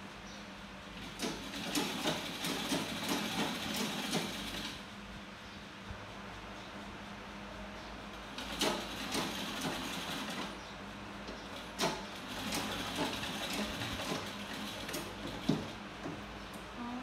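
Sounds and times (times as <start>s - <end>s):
sewing machine running: 1.0s - 4.8s, 8.3s - 10.6s, 11.5s - 15.8s.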